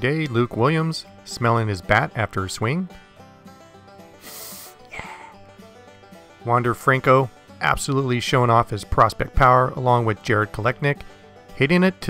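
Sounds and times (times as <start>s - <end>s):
quiet background music: 0.0s - 12.0s
breathy sniff: 4.2s - 5.5s.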